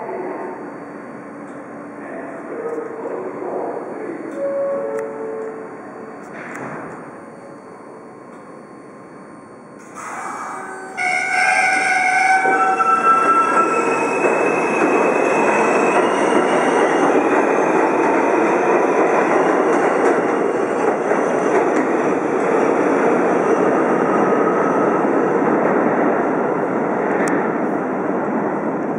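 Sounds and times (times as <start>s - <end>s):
subway train motors whining: 0.0s - 28.9s.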